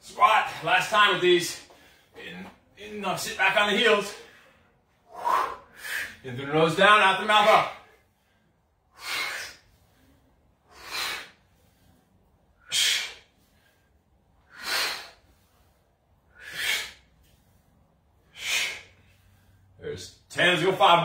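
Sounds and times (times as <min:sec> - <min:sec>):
man exhaling hard: 0:16.3 - 0:17.0.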